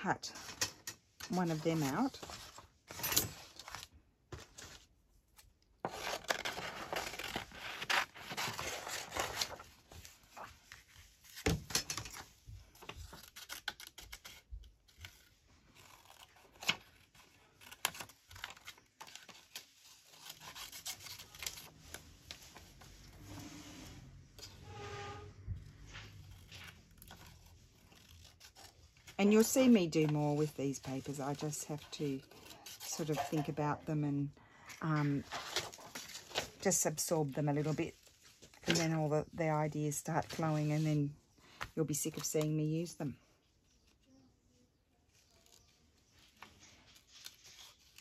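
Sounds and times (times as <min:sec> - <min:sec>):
paper rustling: 0:00.3 - 0:05.0, 0:05.8 - 0:23.7, 0:25.8 - 0:33.6, 0:35.0 - 0:39.0.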